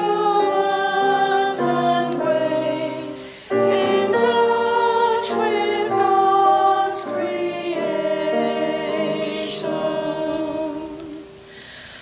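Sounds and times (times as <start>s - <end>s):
voices singing a hymn: 0.0s - 11.9s.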